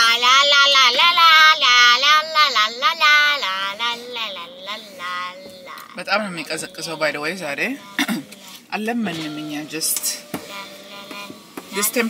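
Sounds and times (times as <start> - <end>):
boy singing high notes: 0.0 - 7.1.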